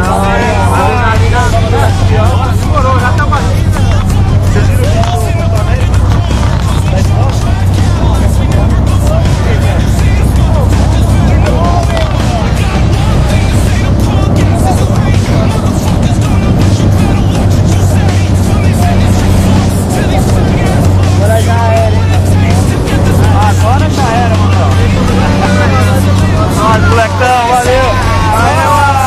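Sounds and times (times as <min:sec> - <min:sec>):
music playing: 0:00.0 - 0:29.0
propeller plane engine droning: 0:00.0 - 0:29.0.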